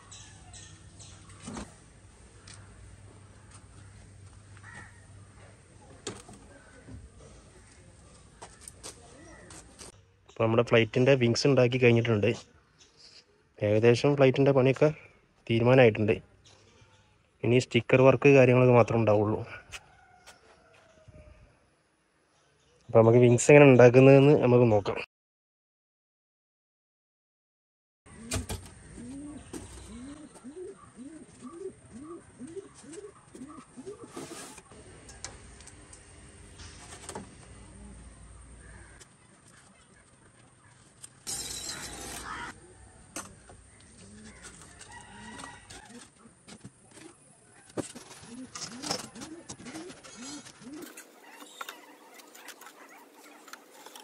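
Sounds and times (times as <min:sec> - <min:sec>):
bird hooting: 0:28.1 - 0:34.2, 0:48.1 - 0:54.0.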